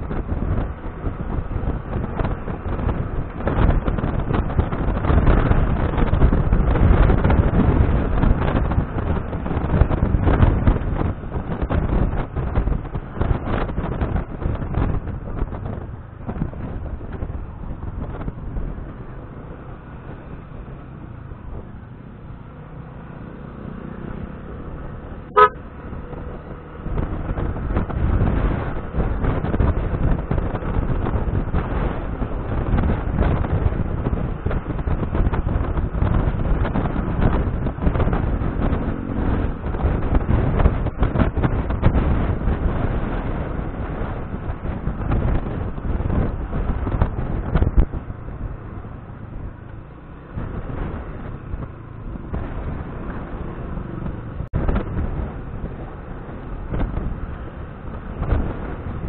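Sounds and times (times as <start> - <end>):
scooter engine: 0.0 - 59.0
wind noise on microphone: 0.0 - 59.0
scooter horn beep: 25.3 - 25.6.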